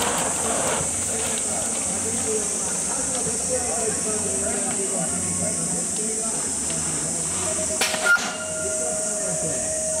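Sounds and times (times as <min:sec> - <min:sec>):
cicadas droning: 0:00.0 - 0:10.0.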